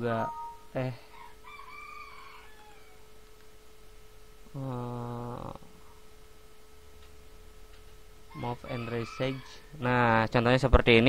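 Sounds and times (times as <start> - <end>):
rooster crowing faintly: 1.1 - 3.0, 8.3 - 9.8.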